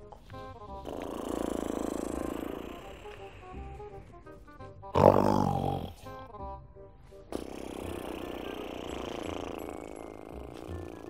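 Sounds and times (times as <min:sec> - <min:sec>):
background music: 0:00.0 - 0:11.0
man snoring: 0:00.7 - 0:03.8, 0:05.0 - 0:06.0, 0:07.3 - 0:11.0.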